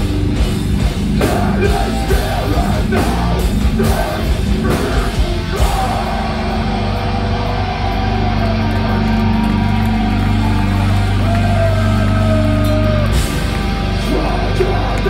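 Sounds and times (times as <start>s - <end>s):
heavy metal band playing live: 0.0s - 15.0s
high guitar line: 0.0s - 15.0s.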